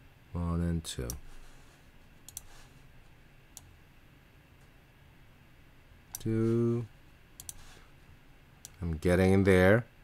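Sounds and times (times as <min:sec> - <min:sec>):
computer mouse clicking: 0:02.2 - 0:02.6, 0:07.4 - 0:07.7.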